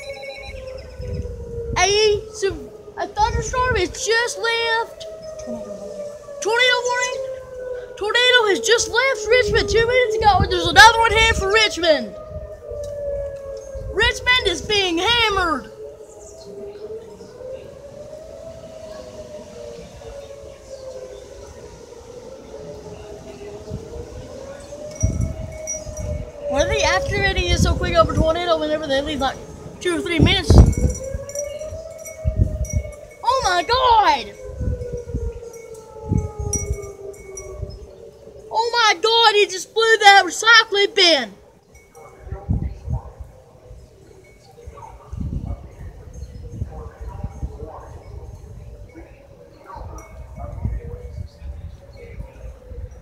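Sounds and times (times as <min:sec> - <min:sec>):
tornado warning siren: 0:00.0 - 0:53.0
wind buffeting microphone: 0:00.0 - 0:53.0.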